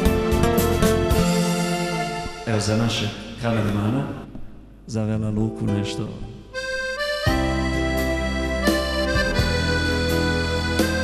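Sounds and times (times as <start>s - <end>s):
bass line: 0.0s - 2.6s, 6.5s - 11.0s
keyboard and guitar instrumental: 0.0s - 3.4s, 5.6s - 11.0s
held keyboard note: 5.7s - 11.0s.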